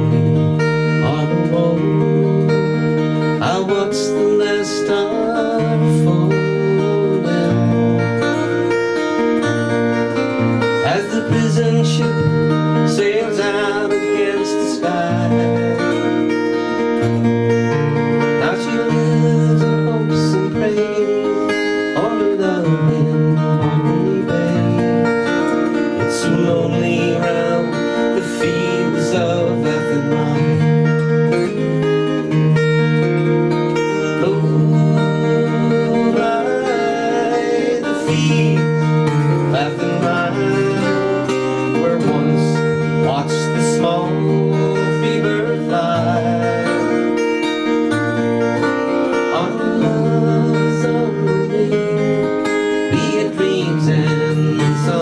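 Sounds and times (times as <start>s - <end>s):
acoustic guitar strummed and picked: 0.0s - 55.0s.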